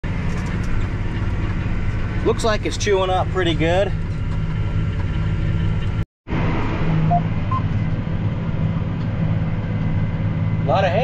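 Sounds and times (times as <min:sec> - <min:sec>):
tractor engine droning: 0:00.0 - 0:11.0.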